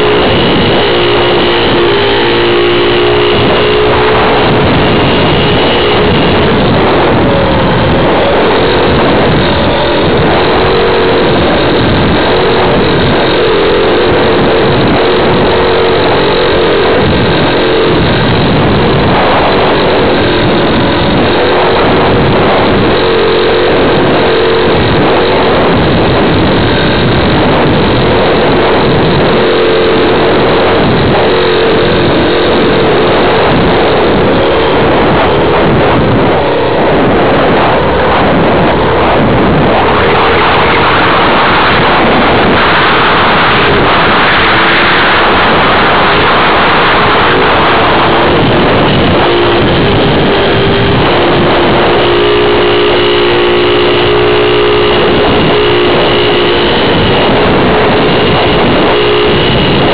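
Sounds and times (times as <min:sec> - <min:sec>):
wind rushing: 0:00.0 - 0:59.9.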